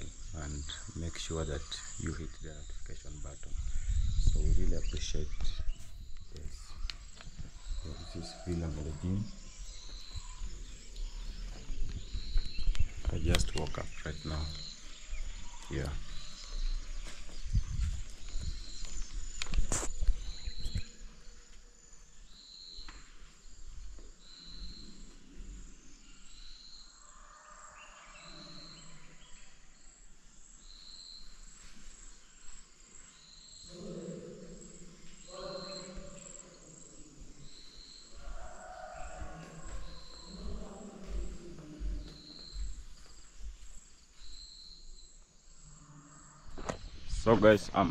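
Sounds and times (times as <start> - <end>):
insects chirping: 0.0 - 47.9
high-pitched insect drone: 33.1 - 47.9.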